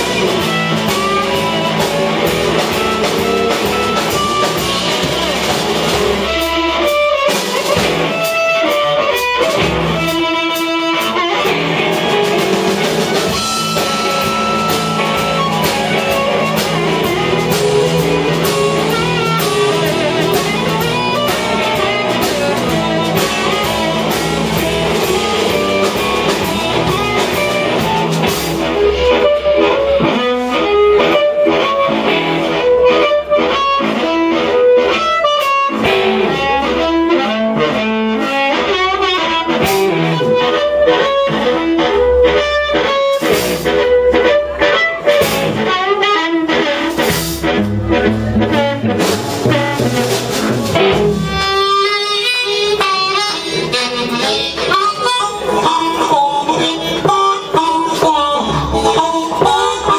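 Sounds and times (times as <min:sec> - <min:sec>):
drums: 0:00.0 - 0:59.9
guitar: 0:00.0 - 0:59.9
harmonica: 0:00.0 - 0:59.9.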